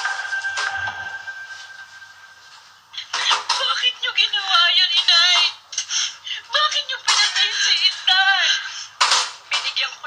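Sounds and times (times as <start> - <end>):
music: 0.0 - 2.7.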